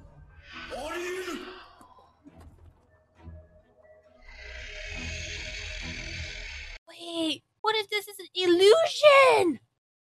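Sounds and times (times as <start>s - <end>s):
sustained soundtrack music: 0.0s - 6.8s.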